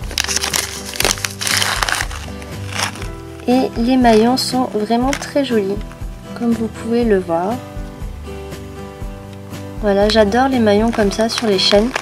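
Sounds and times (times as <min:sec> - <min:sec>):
plastic bag crinkling: 0:00.0 - 0:04.4, 0:10.8 - 0:12.0
background music: 0:00.0 - 0:12.0.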